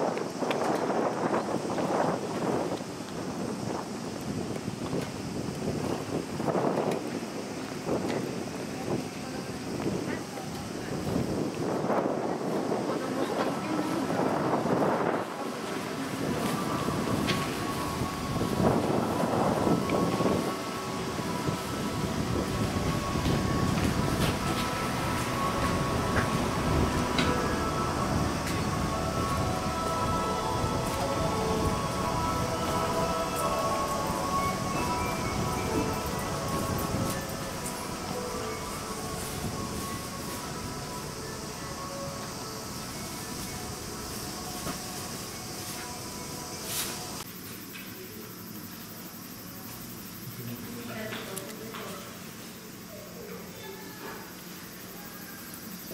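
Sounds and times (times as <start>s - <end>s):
wind buffeting microphone: 0.0s - 47.3s
diesel railcar idling: 9.6s - 47.3s
faint steady machine tone: 12.0s - 55.9s.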